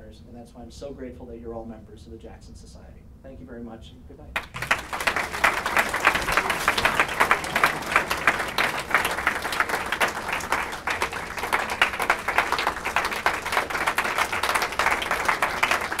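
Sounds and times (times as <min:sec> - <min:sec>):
audience applauding: 0:04.4 - 0:16.0.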